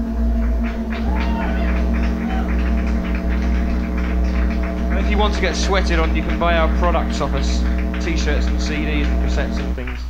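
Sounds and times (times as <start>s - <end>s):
deep bass note: 0.0s - 10.0s
electronic drone: 0.0s - 10.0s.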